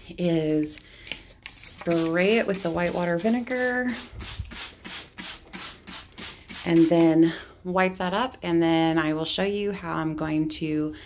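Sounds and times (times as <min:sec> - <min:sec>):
spray bottle hissing sprays: 0:01.5 - 0:07.1.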